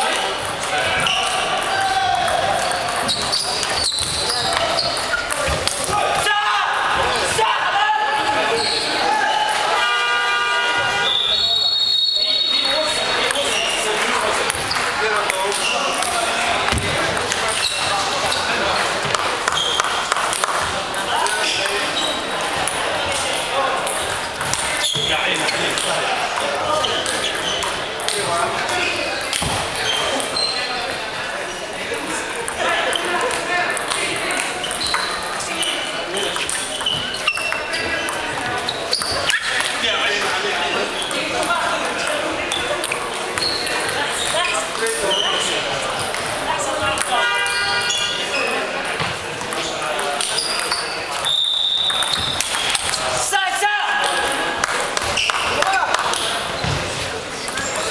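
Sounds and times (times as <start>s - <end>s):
table tennis balls clicking: 0.0s - 6.1s, 13.2s - 31.0s, 32.0s - 53.2s, 54.0s - 57.9s
background chatter of voices: 0.0s - 57.9s.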